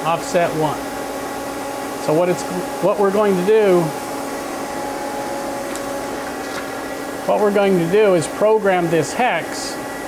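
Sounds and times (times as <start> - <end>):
machine hum of idle lathe: 0.0 - 10.0.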